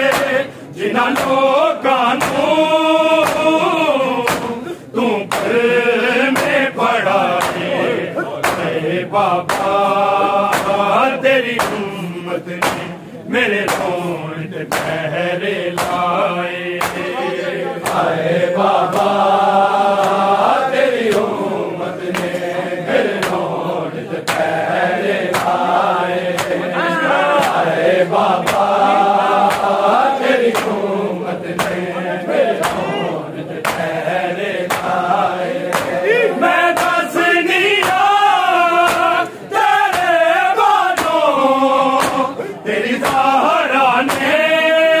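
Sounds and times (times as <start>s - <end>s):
palms slapping chests: 0.0s - 44.5s
men chanting: 0.0s - 45.0s.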